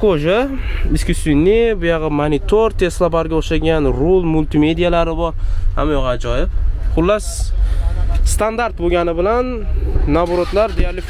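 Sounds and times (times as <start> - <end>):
man talking: 0.0 - 11.0
steady low rumble: 0.0 - 11.0.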